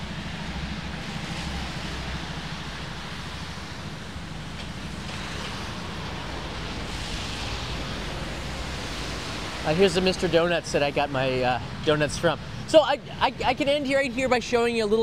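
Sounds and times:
rain falling: 0.0 - 15.0
traffic passing on wet road: 0.0 - 15.0.

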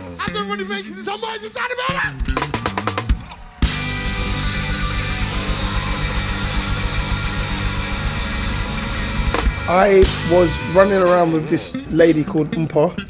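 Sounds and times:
rapid drumming: 2.1 - 11.0
live rock band playing: 2.1 - 12.2.

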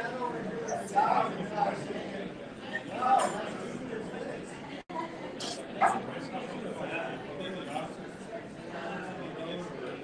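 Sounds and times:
murmur of people talking: 0.0 - 10.0.

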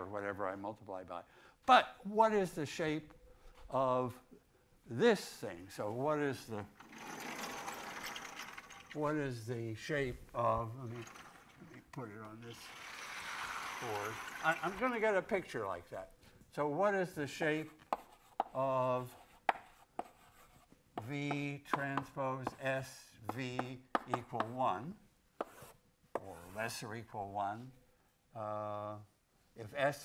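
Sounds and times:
chalk scratching: 17.4 - 21.1, 25.4 - 26.8
chalk tapping on blackboard: 17.6 - 24.6, 25.4 - 26.4.

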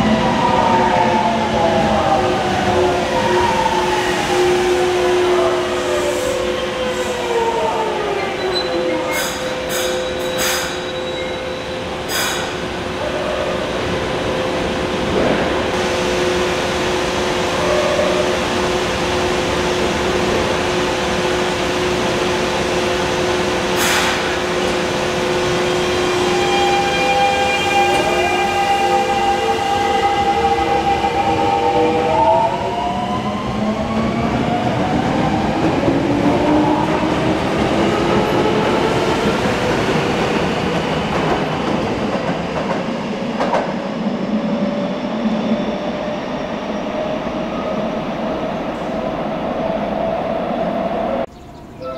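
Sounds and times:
electric train hum: 0.0 - 51.9
sharp hiss: 12.1 - 12.6, 23.8 - 24.4.

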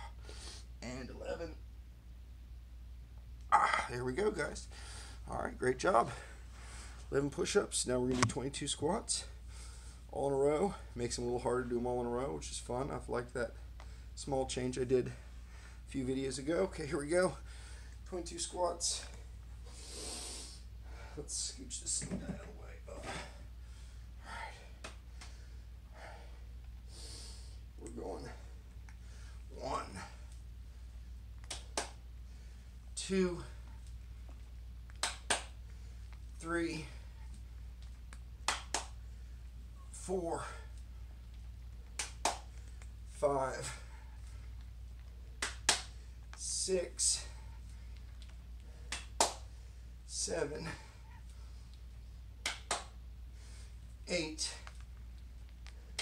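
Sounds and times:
low steady hum: 0.0 - 56.0
sharp clicks during squat: 34.9 - 35.6, 52.4 - 52.9.

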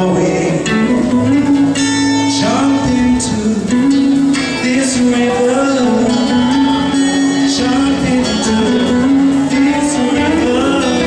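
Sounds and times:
guitar accompaniment: 0.0 - 11.0.

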